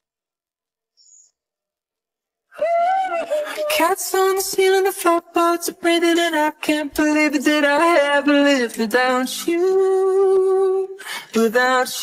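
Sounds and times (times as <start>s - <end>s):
faint high chirp: 0.9s - 1.6s
a cappella singing voice: 2.6s - 12.0s.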